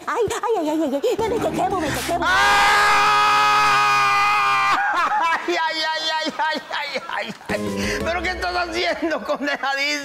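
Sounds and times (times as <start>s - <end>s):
man screaming in pain: 2.2s - 4.9s.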